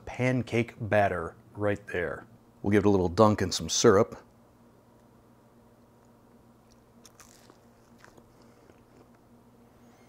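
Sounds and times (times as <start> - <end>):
low steady hum: 0.0 - 10.0
faint chewing: 5.9 - 9.3.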